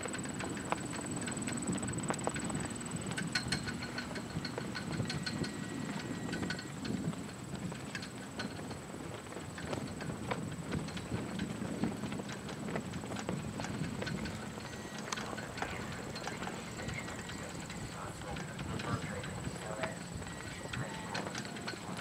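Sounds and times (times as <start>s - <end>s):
horse hooves walking: 0.0s - 22.0s
indistinct voices: 14.9s - 22.0s.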